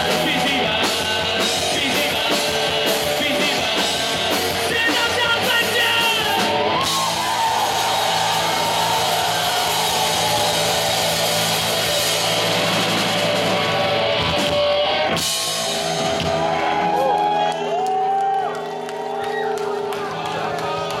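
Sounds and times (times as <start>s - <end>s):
drums and cymbals: 0.0s - 17.2s
rock band playing live: 0.0s - 21.0s
crowd whooping: 5.7s - 14.3s, 15.8s - 21.0s.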